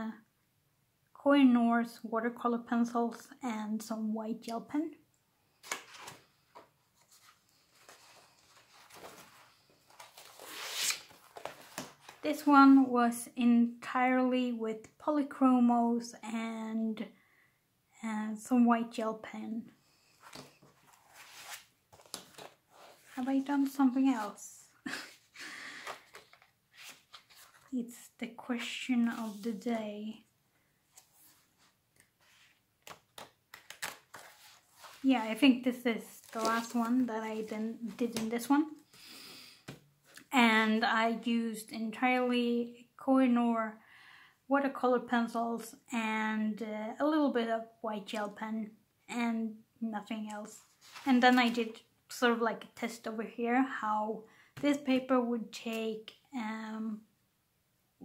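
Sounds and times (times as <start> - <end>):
paper pages turning: 5.6 - 12.3, 20.2 - 24.4, 25.2 - 27.8, 28.6 - 29.8, 30.9 - 35.4, 36.1 - 38.5, 50.5 - 51.7.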